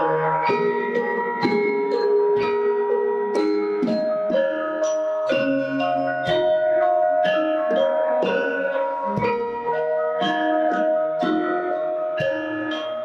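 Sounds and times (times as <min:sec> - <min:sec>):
gamelan ensemble playing: 0:00.0 - 0:13.0.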